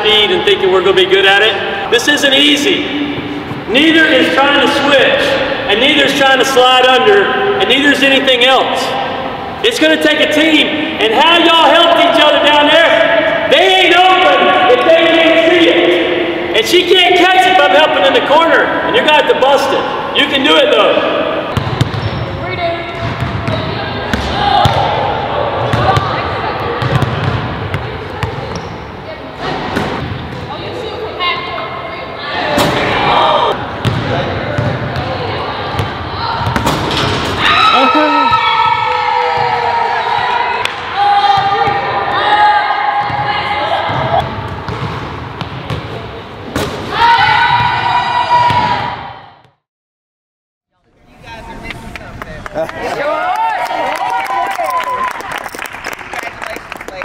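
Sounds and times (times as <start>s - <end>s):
basketballs bouncing on hardwood: 21.5s - 22.3s, 22.9s - 24.9s, 26.8s - 28.7s, 33.8s - 35.1s, 43.0s - 45.9s.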